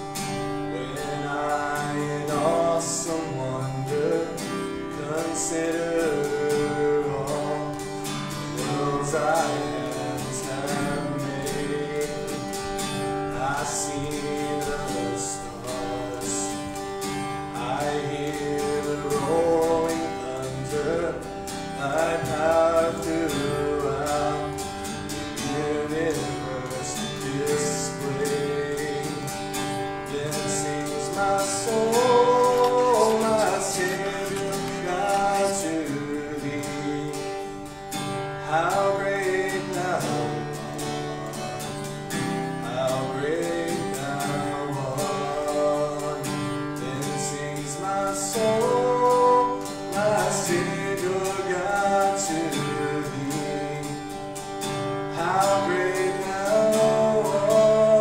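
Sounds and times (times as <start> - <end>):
acoustic guitar strumming: 0.0 - 58.0
man singing: 0.0 - 58.0.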